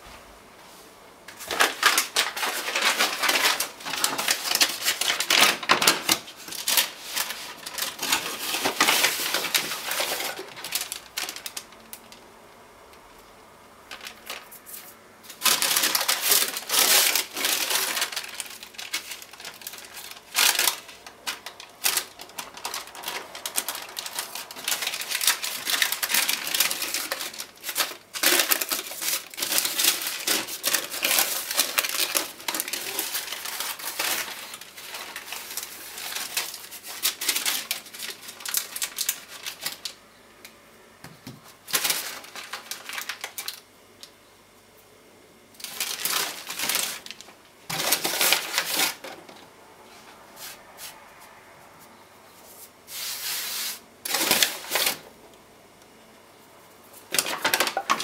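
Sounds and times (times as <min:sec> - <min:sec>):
parchment paper rustling and crinkling: 0:01.3 - 0:12.2, 0:13.9 - 0:40.0, 0:41.2 - 0:43.6, 0:45.6 - 0:51.0, 0:51.8 - 0:55.2, 0:56.8 - 0:58.0.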